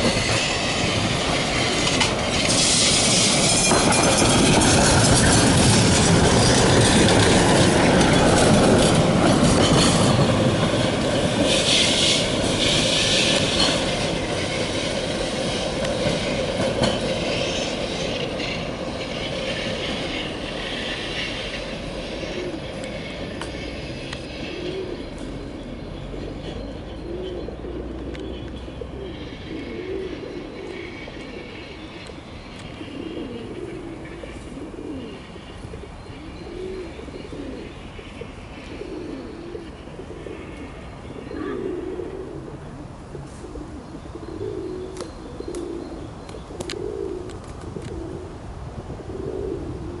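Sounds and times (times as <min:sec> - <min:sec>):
pigeon cooing: 0:24.5 - 0:25.1, 0:28.8 - 0:31.7, 0:32.8 - 0:48.4, 0:49.0 - 0:50.0.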